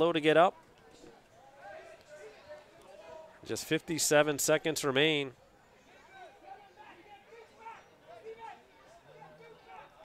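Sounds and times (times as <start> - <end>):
faint chatter of voices: 0.2 - 10.0.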